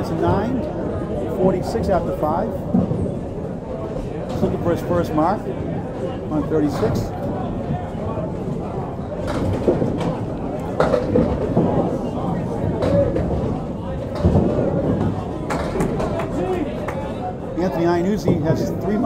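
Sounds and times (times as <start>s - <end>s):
chatter of bowlers: 0.0s - 19.0s
bowling balls clattering pins: 6.0s - 16.6s.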